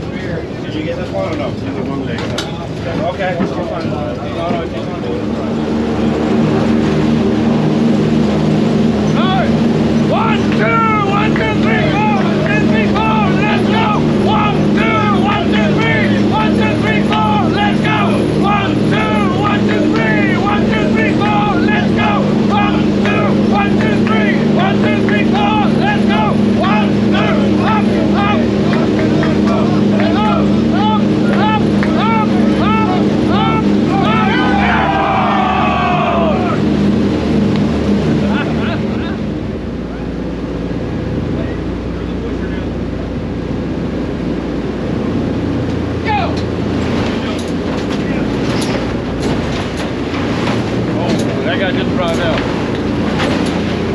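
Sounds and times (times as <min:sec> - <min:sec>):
aircraft engines droning: 0:00.0 - 0:53.9.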